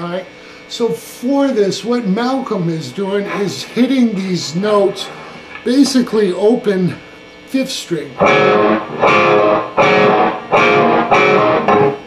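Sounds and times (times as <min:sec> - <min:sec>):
overdriven electric guitar low note: 0:08.2 - 0:12.0.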